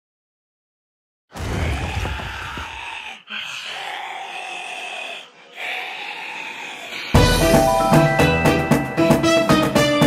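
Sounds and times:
breathy hissing sound effect: 1.7s - 7.2s.

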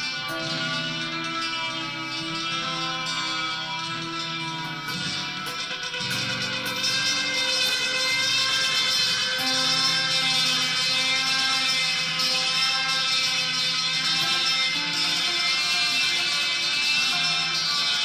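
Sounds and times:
electric guitar with delay: 0.0s - 18.0s.

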